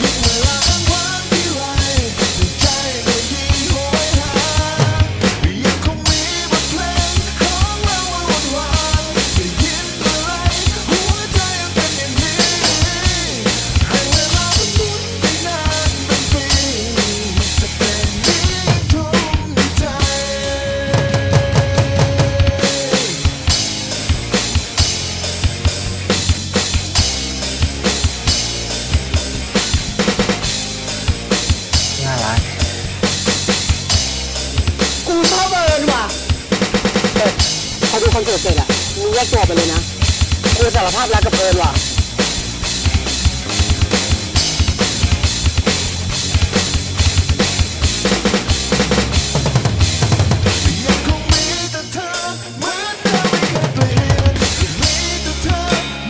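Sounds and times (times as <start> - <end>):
person singing: 0.0 - 23.3, 31.9 - 32.7, 35.0 - 36.3, 37.0 - 39.9, 40.5 - 41.8, 50.6 - 56.0
drum app rock beat: 0.0 - 56.0
rock backing track with bass: 0.0 - 56.0.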